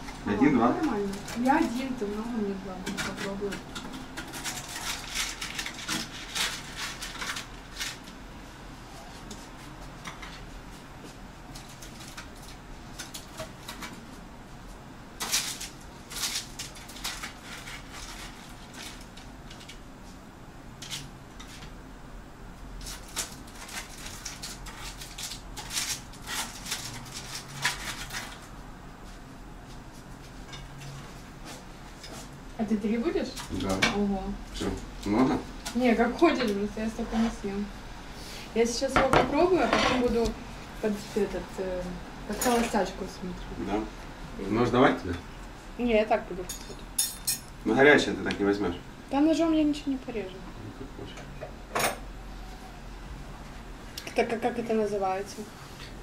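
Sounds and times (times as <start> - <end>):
utensils and dishes clinking: 42.3 - 42.8, 46.5 - 47.5.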